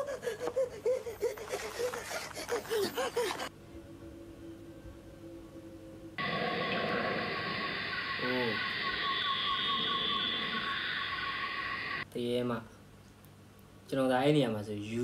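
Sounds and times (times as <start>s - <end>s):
faint steady hum: 3.5s - 15.0s
insects chirping: 6.2s - 12.0s.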